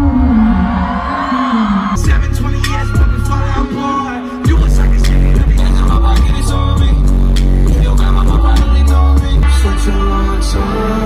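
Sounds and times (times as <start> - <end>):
loud live hip hop music: 0.6 - 11.0.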